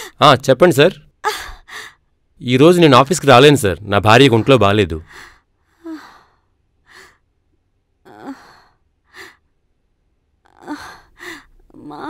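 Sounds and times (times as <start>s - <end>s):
woman sighing: 1.2s - 2.0s, 8.0s - 9.4s, 10.5s - 12.0s.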